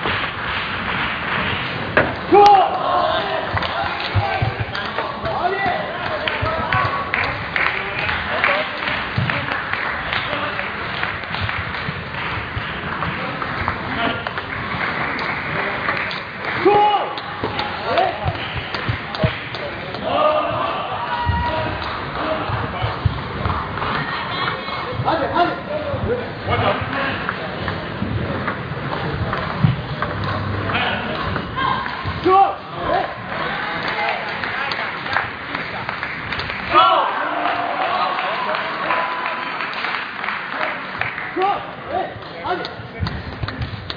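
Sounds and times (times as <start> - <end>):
murmur of a crowd: 1.8 - 39.2.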